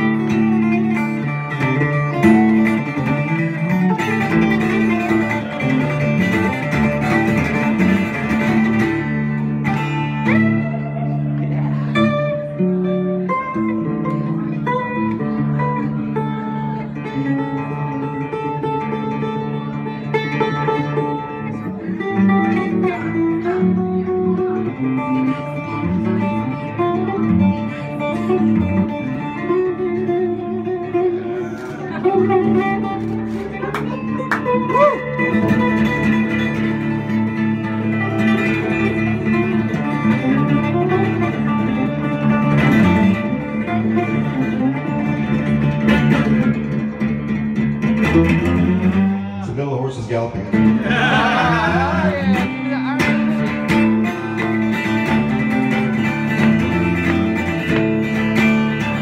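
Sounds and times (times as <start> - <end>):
picked guitar melody over drone: 0.0 - 49.4, 50.4 - 59.0.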